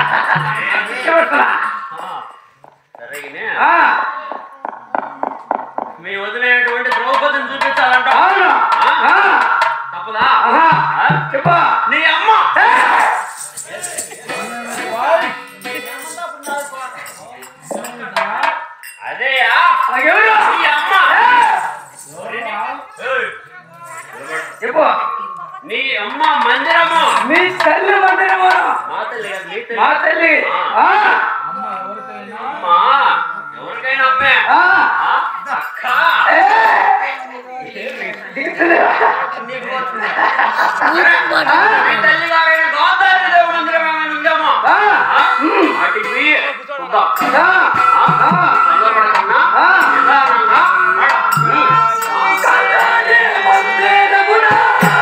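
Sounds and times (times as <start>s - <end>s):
thin metallic clinks: 12.7s - 29.5s
person singing: 13.0s - 16.0s.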